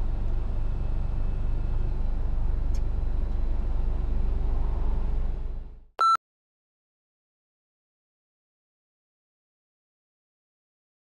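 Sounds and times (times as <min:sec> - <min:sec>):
car engine and tyre rumble: 0:00.0 - 0:05.9.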